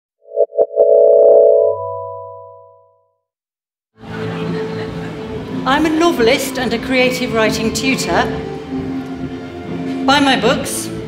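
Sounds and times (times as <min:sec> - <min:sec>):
electronic musical ident: 0:00.2 - 0:03.0
held synthesizer chord: 0:00.2 - 0:03.2.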